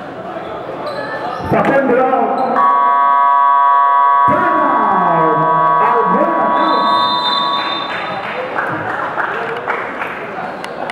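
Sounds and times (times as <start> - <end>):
scoreboard buzzer tone: 2.6 - 8.2.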